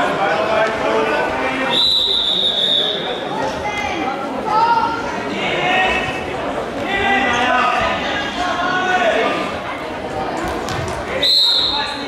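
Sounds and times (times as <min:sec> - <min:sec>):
referee's whistle blast: 0:11.2 - 0:11.9.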